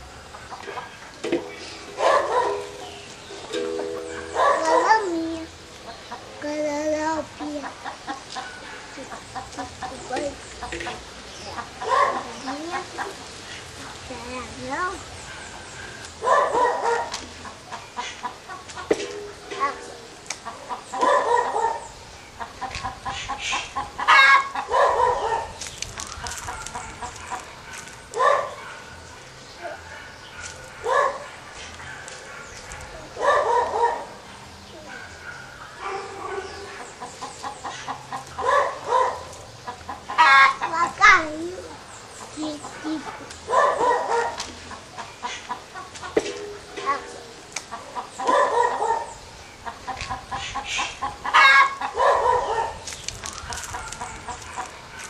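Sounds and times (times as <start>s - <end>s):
chickens clucking: 0.0s - 55.0s.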